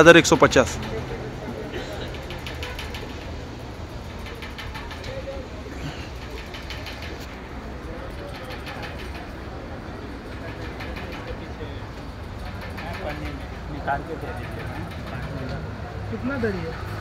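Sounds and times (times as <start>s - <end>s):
indistinct background voices: 0.0s - 17.0s.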